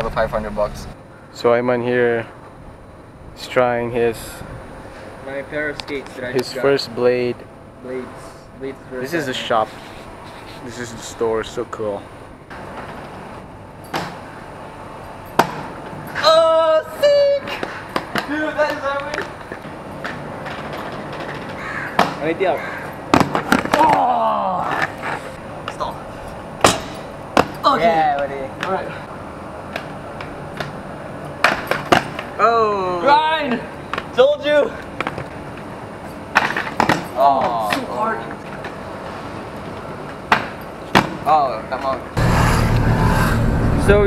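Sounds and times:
skate wheels rolling on tiles: 17.5 - 22.2.

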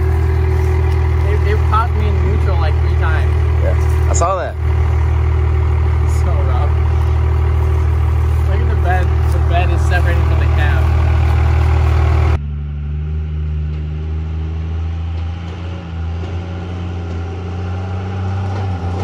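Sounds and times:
truck engine idling: 0.0 - 14.2.

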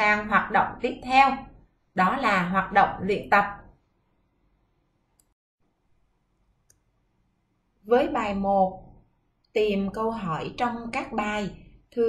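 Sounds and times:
woman speaking: 0.0 - 3.7, 7.9 - 8.9, 9.6 - 12.0
faint clicks: 5.2 - 5.4.

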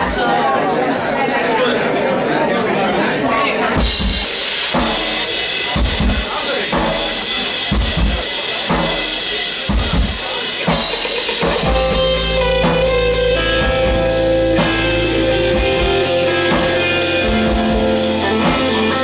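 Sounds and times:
drum kit beating a rhythm: 3.6 - 19.0
bass guitar: 4.8 - 19.0
sustained keyboard notes: 10.7 - 19.0
electric guitar notes: 10.8 - 19.0.

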